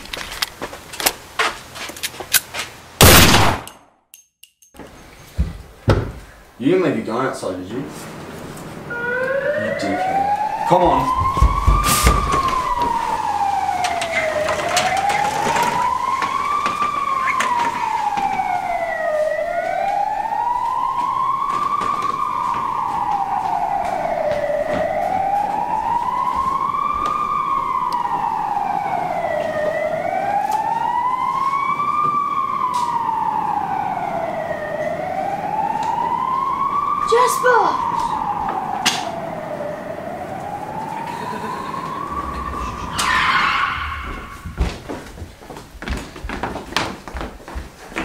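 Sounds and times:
siren wailing: 7.7 - 45.1.

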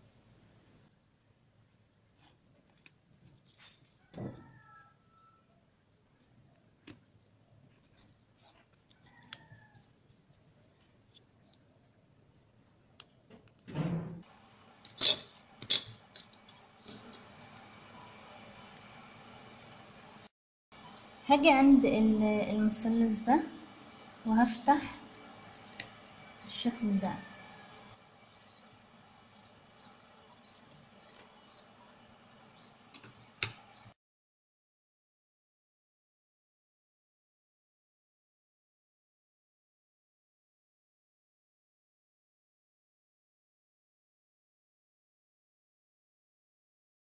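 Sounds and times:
bird chirping: 16.6 - 18.1, 28.2 - 34.0.

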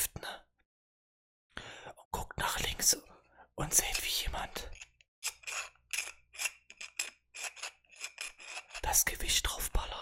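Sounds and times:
metal rod scraping metal: 4.7 - 8.9.

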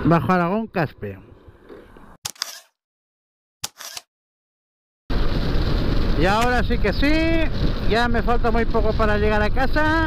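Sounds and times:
camera shutter click: 2.2 - 2.8, 3.6 - 4.1.

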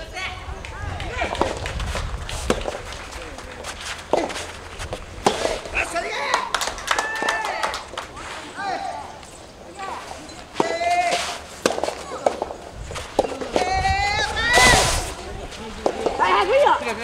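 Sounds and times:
voices calling out: 0.0 - 17.0
tennis ball hitting racket: 0.7 - 6.5, 10.4 - 15.2, 15.8 - 16.7.

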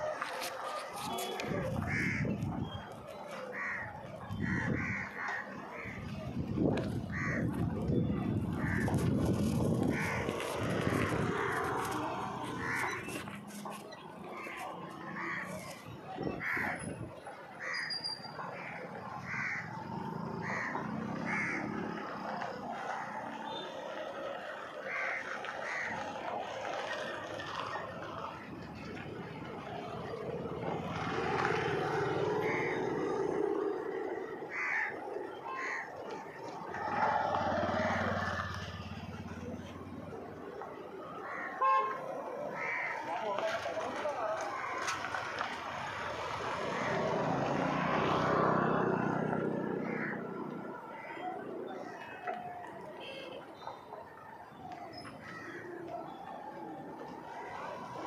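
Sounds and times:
crows cawing: 1.5 - 2.4, 3.4 - 6.2, 7.1 - 7.6, 8.5 - 9.0, 9.9 - 13.2, 14.3 - 15.8, 16.4 - 16.8, 17.6 - 17.9, 18.5 - 22.3, 24.8 - 26.2, 32.4 - 33.2, 34.2 - 36.9, 41.2 - 41.7, 42.5 - 43.5, 44.4 - 45.0, 49.8 - 50.4, 55.2 - 55.8.

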